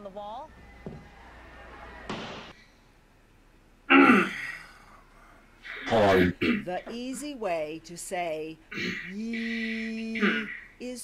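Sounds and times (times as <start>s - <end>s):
man clearing his throat: 3.9s - 4.6s.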